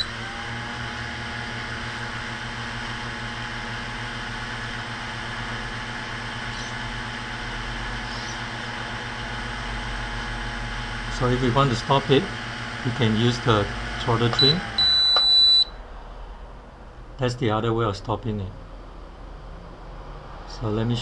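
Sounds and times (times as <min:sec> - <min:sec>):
quadcopter motors whining: 0:00.0 - 0:03.6, 0:04.4 - 0:12.3.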